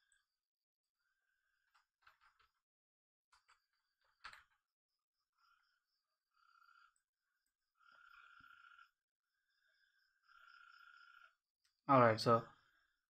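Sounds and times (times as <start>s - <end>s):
faint buzzing calls: 5.2s - 13.0s.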